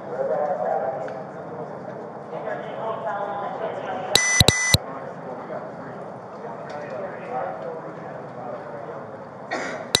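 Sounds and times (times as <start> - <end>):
murmur of people talking: 0.0 - 10.0
sharp click: 4.2 - 4.6
person clearing throat: 9.5 - 10.0.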